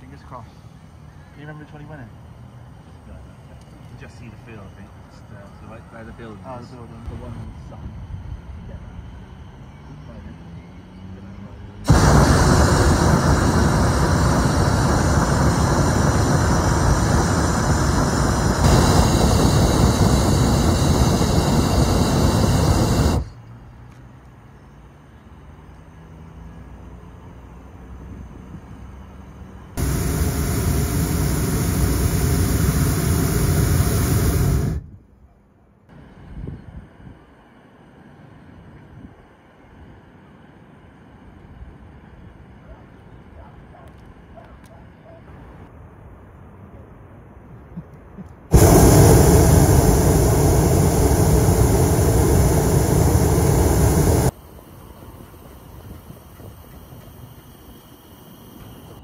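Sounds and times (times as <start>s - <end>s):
propane burner firing: 11.8s - 23.4s, 29.8s - 34.9s, 48.5s - 54.4s.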